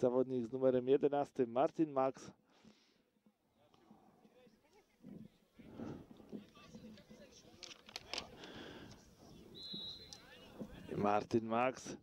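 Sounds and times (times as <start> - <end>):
referee's whistle blast: 9.5 - 10.3.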